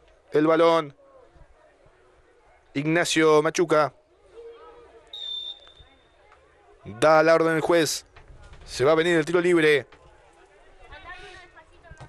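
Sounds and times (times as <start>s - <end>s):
faint voices: 4.0s - 12.0s
referee's whistle blast: 5.1s - 6.2s.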